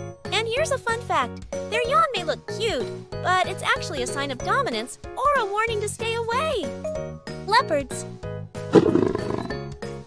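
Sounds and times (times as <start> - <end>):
cheerful children's music: 0.0 - 10.0
leopard roar: 8.7 - 9.6.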